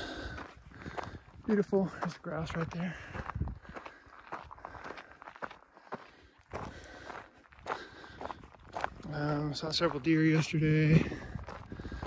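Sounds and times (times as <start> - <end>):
footsteps crunching on gravel: 0.0 - 12.0.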